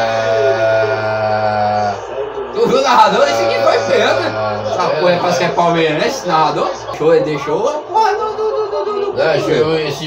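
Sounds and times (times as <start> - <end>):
man holding a low aaah: 0.0 - 2.1.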